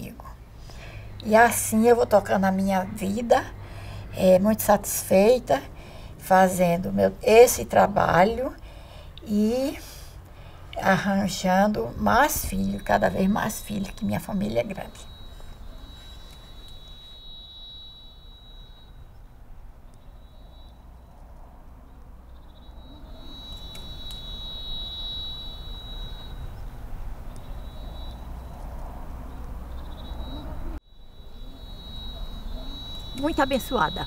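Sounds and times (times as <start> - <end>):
low rumble of wind or traffic: 0.0 - 34.0
high thin buzzing tones: 12.2 - 21.0.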